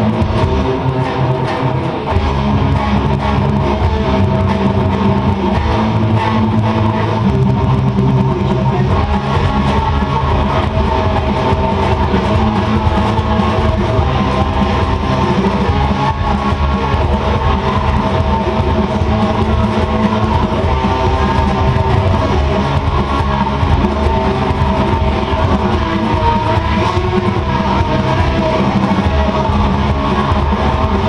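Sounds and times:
distorted electric guitar strumming: 0.0 - 31.0
full-band rock music: 0.0 - 31.0.

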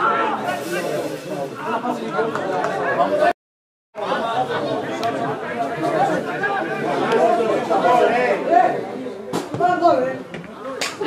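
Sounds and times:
people talking over one another: 0.0 - 3.4, 4.0 - 11.0.

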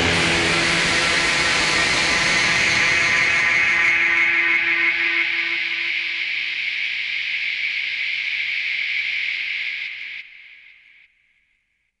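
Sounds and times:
distorted metal guitar chord: 0.0 - 4.0.

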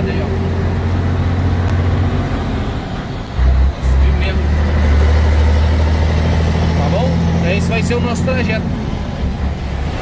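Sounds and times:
truck diesel engine droning: 0.0 - 10.0.

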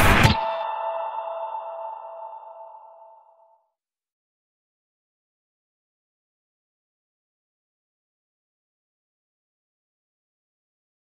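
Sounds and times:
intro music: 0.0 - 3.6
ringing chord: 0.0 - 3.7.

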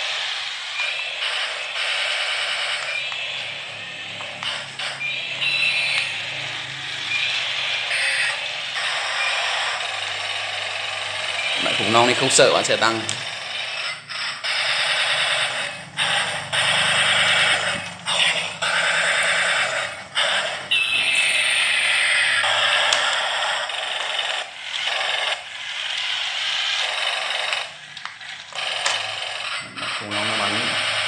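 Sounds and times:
toy tank motors whirring: 0.0 - 31.0
falling electronic tone: 1.9 - 22.8.

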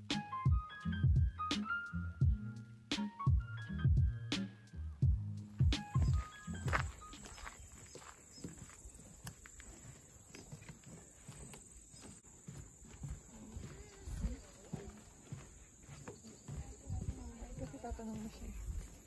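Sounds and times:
background music: 0.0 - 7.6
footsteps on wooden boardwalk: 5.5 - 19.0
faint voices: 9.7 - 19.0.

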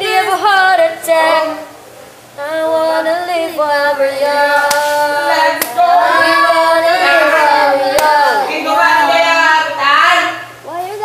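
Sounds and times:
woman singing unaccompanied: 0.0 - 1.8, 2.4 - 11.0.

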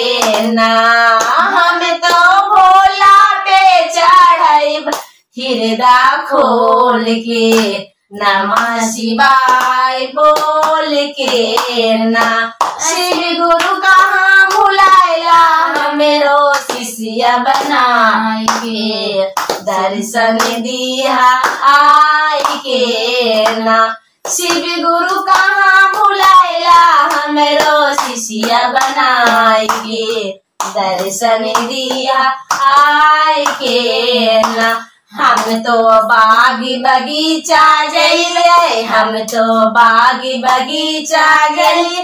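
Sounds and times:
women singing devotional song: 0.0 - 42.0
hands clapping in time: 0.2 - 0.6, 1.2 - 2.2, 19.4 - 19.8, 27.0 - 33.8.

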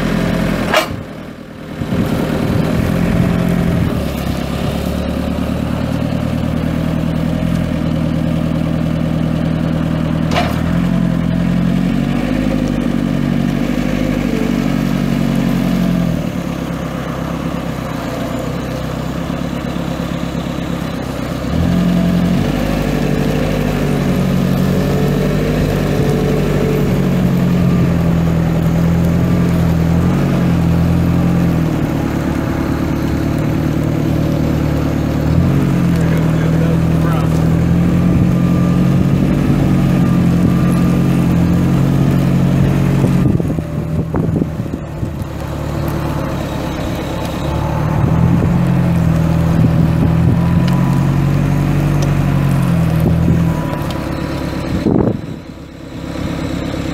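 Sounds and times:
diesel engine revving: 0.0 - 56.9.

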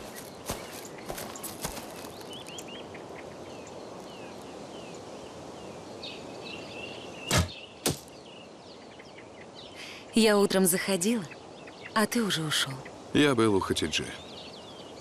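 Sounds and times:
birds chirping: 0.0 - 15.0
arrow striking target: 7.3 - 8.1.

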